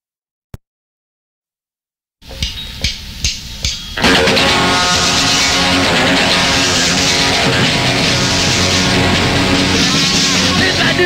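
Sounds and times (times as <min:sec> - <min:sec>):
guitar amp noise: 0:02.2 - 0:11.0
count-in hits: 0:02.3 - 0:11.0
punk rock band playing: 0:02.3 - 0:11.0.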